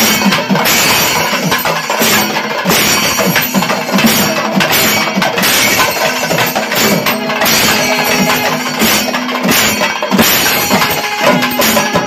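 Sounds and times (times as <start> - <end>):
drums struck with sticks: 0.0 - 12.0
hand cymbals clashing: 0.0 - 12.0.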